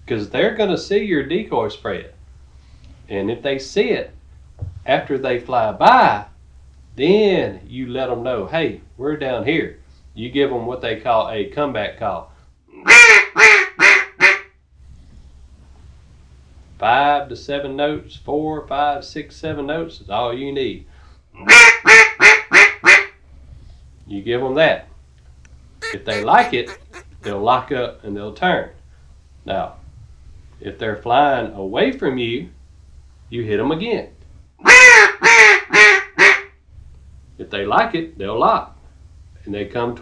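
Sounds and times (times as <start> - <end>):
duck call notes: 12.9 - 14.4, 21.5 - 23.0, 25.8 - 27.5, 34.7 - 36.4.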